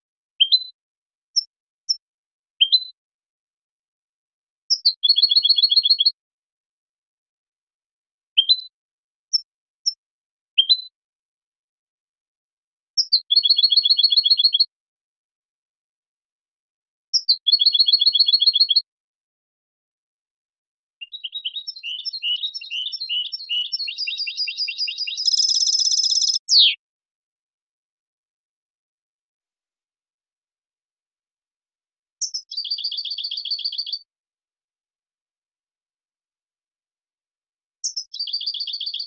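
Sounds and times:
goldfinch singing: 4.7s - 6.2s, 13.0s - 14.6s, 17.2s - 18.8s, 21.0s - 26.8s, 32.2s - 34.0s, 37.8s - 39.0s.

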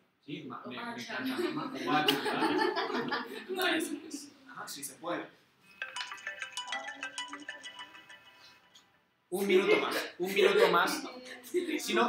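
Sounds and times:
electronic ringtone melody: 5.7s - 8.9s.

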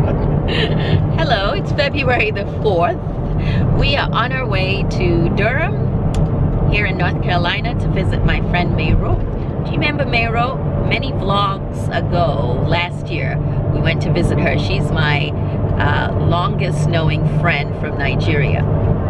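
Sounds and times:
engine hum: 0.0s - 19.0s
road noise: 0.0s - 19.0s
woman talking: 0.5s - 5.8s, 6.7s - 18.6s.

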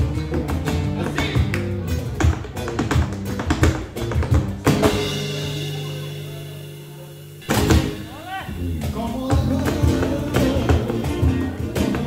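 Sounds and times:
acoustic flamenco guitars: 0.0s - 6.4s, 7.4s - 12.0s
dancer's heel and toe strikes: 0.2s - 5.1s.

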